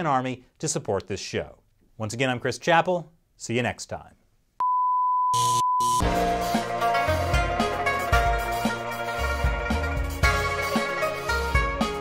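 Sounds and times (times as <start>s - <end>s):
steady test tone beep: 4.6s - 6.1s.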